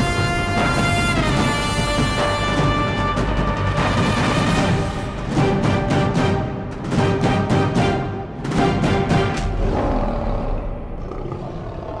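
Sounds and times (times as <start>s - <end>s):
lion roaring: 9.4s - 12.0s.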